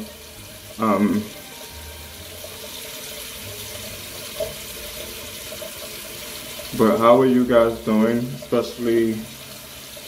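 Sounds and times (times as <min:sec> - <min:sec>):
tap running into sink: 0:00.9 - 0:07.0.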